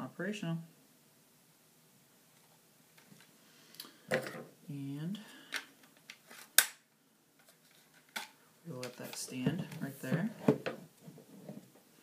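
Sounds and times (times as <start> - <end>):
sharp loud plastic snap: 6.6 - 6.8.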